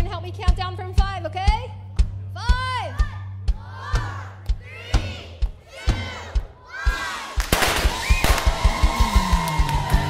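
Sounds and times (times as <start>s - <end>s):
confetti cannon blasts: 7.4s - 9.7s
fast drum beat: 7.4s - 10.0s.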